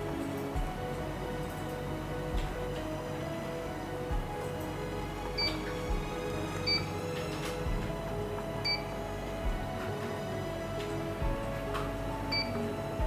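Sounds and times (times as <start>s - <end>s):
background music with soft beat: 0.0s - 13.0s.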